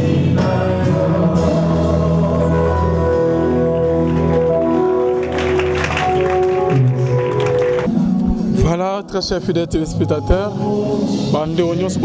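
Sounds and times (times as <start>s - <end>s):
group singing gospel: 0.0s - 4.0s
keyboard organ chords: 0.0s - 12.0s.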